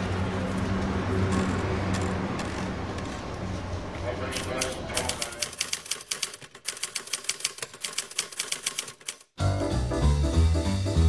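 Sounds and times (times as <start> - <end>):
typewriter keys clacking: 4.3 - 9.4.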